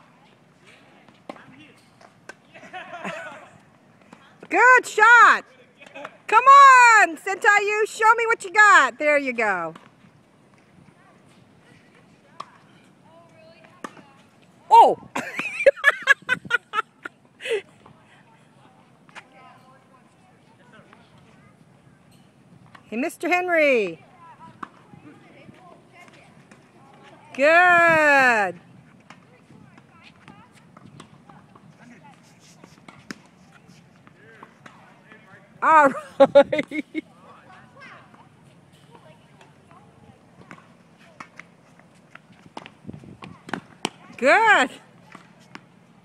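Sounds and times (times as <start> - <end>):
faint distant voices: 16.7 - 46.0
tennis balls being struck: 42.1 - 44.1.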